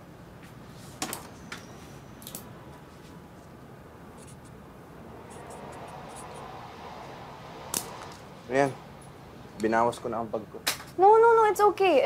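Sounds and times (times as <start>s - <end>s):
pen scratching on paper: 4.2s - 4.6s.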